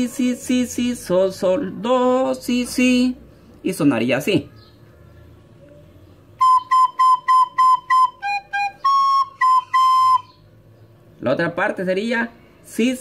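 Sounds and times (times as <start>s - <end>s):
soprano recorder playing: 6.4s - 10.4s.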